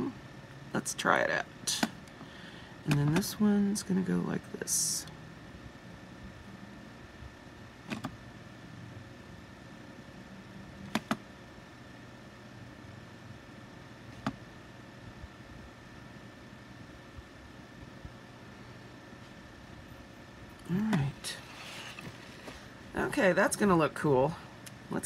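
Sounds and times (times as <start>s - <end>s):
steady low hum: 0.0s - 25.0s.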